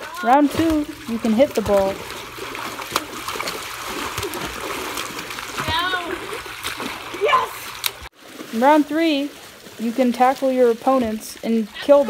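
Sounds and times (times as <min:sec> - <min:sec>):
water splashing in pool: 0:00.0 - 0:12.0.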